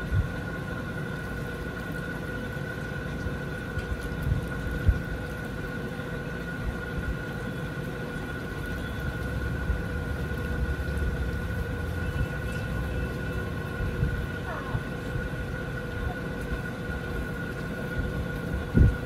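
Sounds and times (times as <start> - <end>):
constant hum: 0.0 - 19.0
steady low rumble: 0.0 - 19.0.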